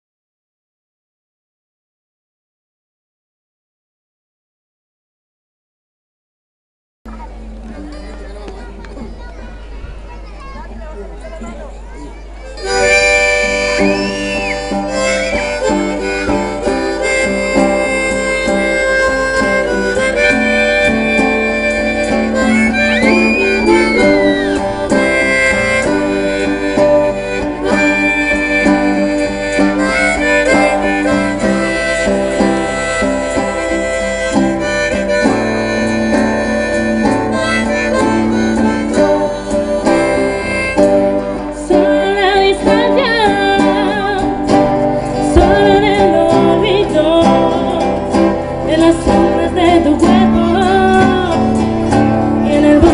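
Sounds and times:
live band playing instrumental: 7.1s - 52.9s
pitch-bending lead melody: 12.6s - 41.6s.

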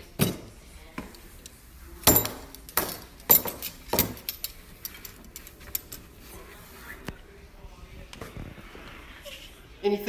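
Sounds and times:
silverware clinking on wooden table: 2.0s - 5.1s.

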